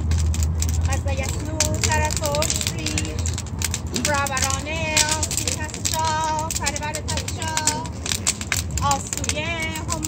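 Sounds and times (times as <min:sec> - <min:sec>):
bonfire crackling: 0:00.0 - 0:10.0
steady low rumble: 0:00.0 - 0:10.0.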